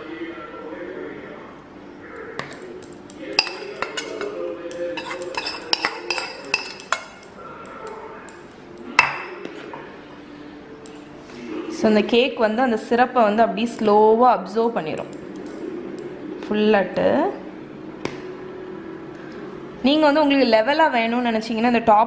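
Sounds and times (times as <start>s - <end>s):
metal spoon clinking on cookware: 2.4s - 8.0s.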